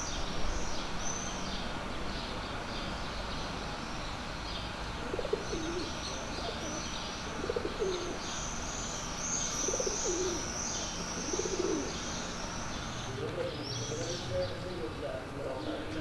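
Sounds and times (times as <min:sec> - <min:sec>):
small birds chirping: 0:00.0 - 0:16.0
pigeons cooing: 0:05.0 - 0:08.4, 0:09.6 - 0:16.0.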